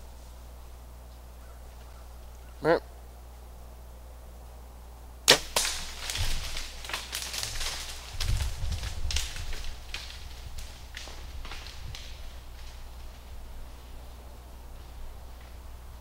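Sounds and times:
deer bounding through dry leaves: 0:05.3 - 0:16.0.

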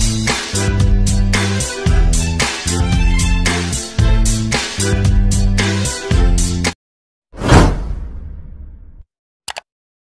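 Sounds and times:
whoosh sound effect: 0:07.4 - 0:08.5.

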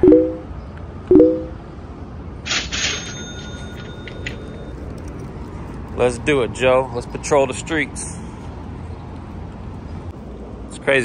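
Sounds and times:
short two-tone beeps: 0:00.0 - 0:01.6
street background noise: 0:00.0 - 0:11.0.

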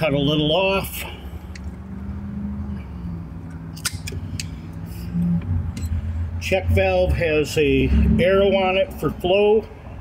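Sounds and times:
low steady hum: 0:00.0 - 0:08.9.

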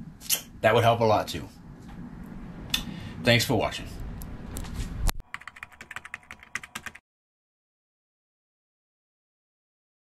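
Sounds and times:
low room noise rumble: 0:00.0 - 0:07.0
rapid typing-like clicks: 0:05.2 - 0:07.0.

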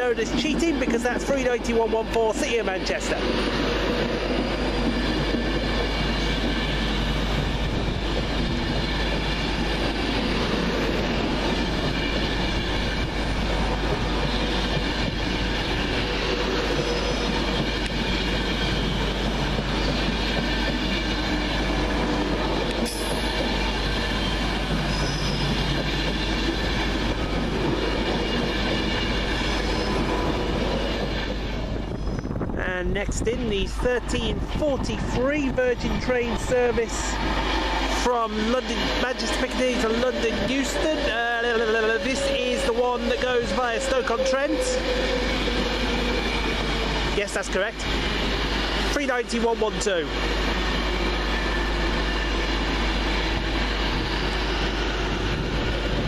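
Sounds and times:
electric train carriages over rails: 0:00.0 - 0:56.0.

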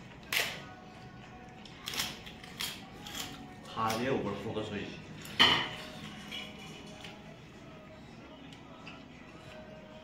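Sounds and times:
tableware clicking and knocking: 0:05.2 - 0:07.2.

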